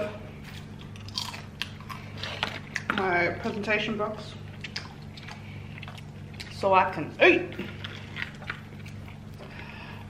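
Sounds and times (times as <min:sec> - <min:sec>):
small crunches: 0:00.4 - 0:03.0
chewing and biting: 0:00.4 - 0:03.1, 0:04.4 - 0:06.7, 0:07.5 - 0:10.0.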